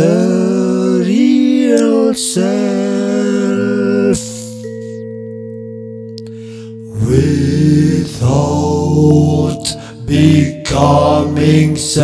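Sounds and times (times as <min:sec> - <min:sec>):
musical drone: 0:03.0 - 0:12.0.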